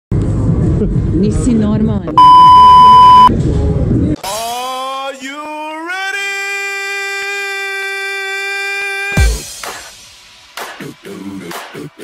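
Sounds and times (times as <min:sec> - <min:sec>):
high-pitched electronic bleep: 0:02.2 - 0:03.3.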